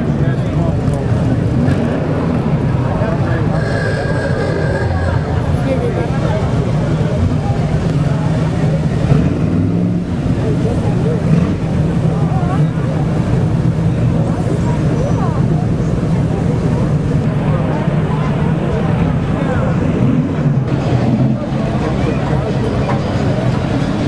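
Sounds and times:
car engines running: 0.0s - 24.0s
spectators chattering: 0.0s - 24.0s.

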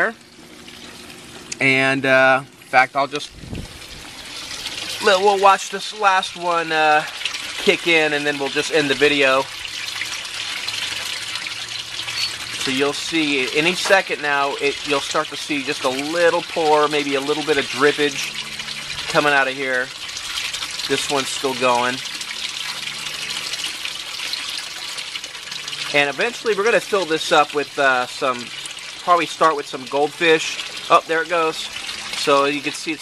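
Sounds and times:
siphon draining water: 0.0s - 33.0s
water flowing into grow beds: 0.0s - 33.0s.

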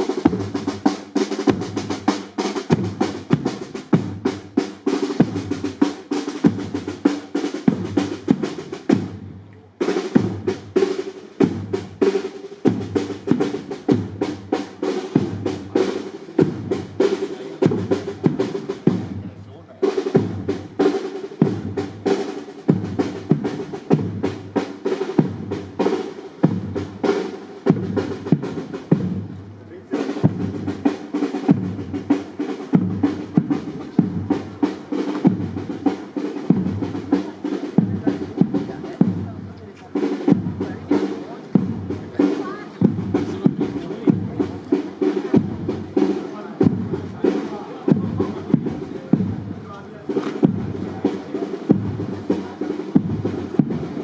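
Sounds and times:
marching snare and bass drums: 0.0s - 54.0s.

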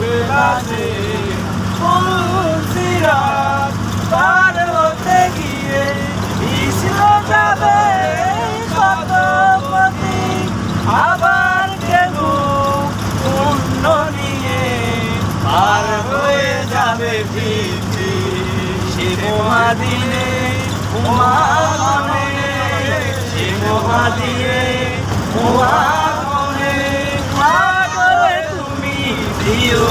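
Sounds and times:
bus engine drone: 0.0s - 29.9s
man singing: 0.0s - 29.9s.

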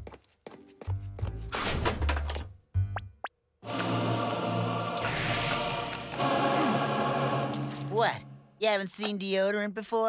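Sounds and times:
choir singing sustained chord: 3.6s - 8.6s.

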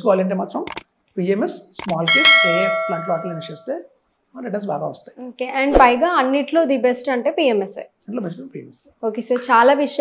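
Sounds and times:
bell chime ringing: 2.0s - 3.6s.

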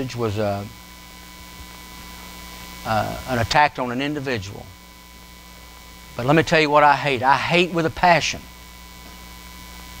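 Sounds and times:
man speaking: 0.0s - 0.7s, 2.8s - 4.7s, 6.2s - 8.5s
electrical mains hum: 0.0s - 10.0s.

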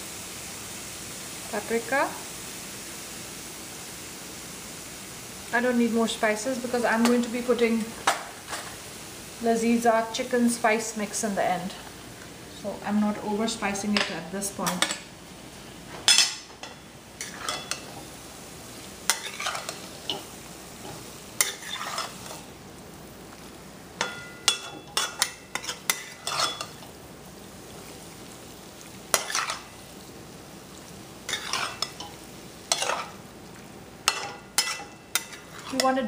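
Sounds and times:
chicken sizzling in oil: 0.0s - 36.0s
metal spatula scraping pan: 16.1s - 18.1s, 19.1s - 22.5s, 24.0s - 26.9s, 29.1s - 29.8s, 31.3s - 33.2s, 34.0s - 36.0s.

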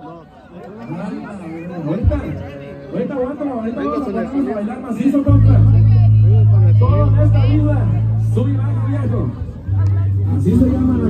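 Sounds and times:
voices: 0.0s - 11.0s
amplified music: 5.3s - 11.0s.

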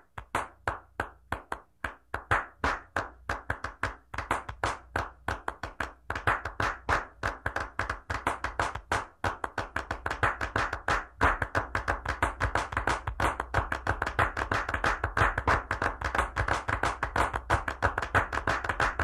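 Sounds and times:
rhythmic hand clapping: 0.0s - 19.0s.

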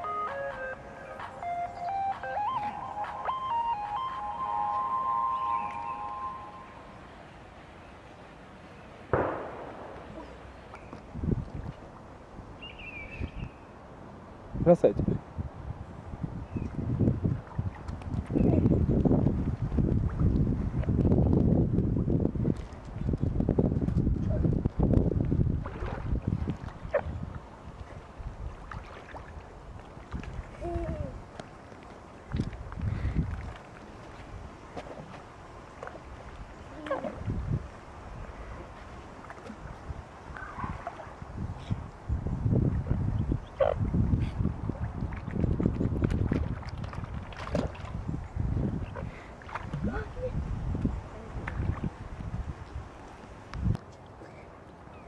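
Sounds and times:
swan calling: 0.0s - 6.8s
wind buffeting microphone: 9.1s - 13.6s, 14.3s - 31.4s, 32.1s - 53.9s.

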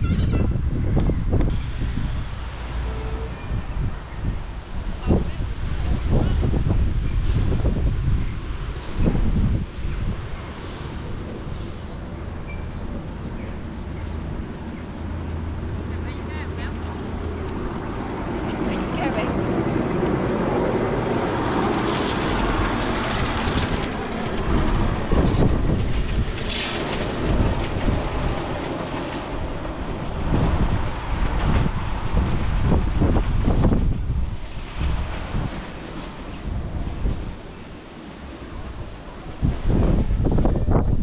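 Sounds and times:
wind buffeting microphone: 0.0s - 41.0s
people's voices: 15.8s - 17.6s, 18.4s - 19.5s.

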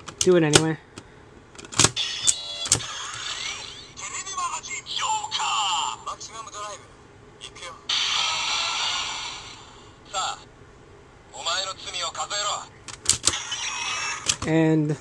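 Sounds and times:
toy sound effects: 1.9s - 5.6s, 7.9s - 9.6s, 13.2s - 14.4s
toy electronic voice: 2.0s - 6.8s, 7.4s - 10.4s, 13.3s - 14.4s
long hissing whoosh: 7.9s - 10.0s.

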